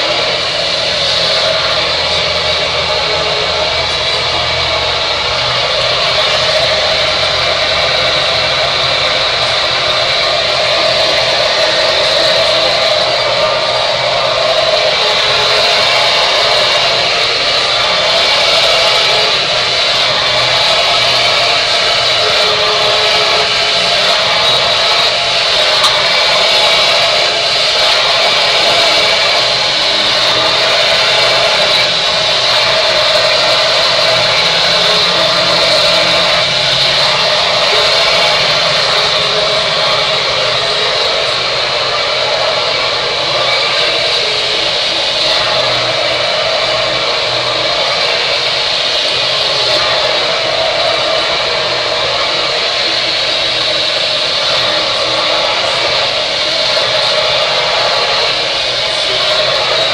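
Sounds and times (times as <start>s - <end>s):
hair dryer blowing air: 0.0s - 59.9s.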